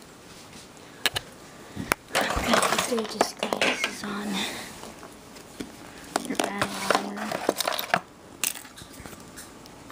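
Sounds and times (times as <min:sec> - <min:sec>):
steady hum: 0:00.0 - 0:09.9
plastic toys clicking and clattering: 0:02.1 - 0:04.1, 0:06.2 - 0:09.2.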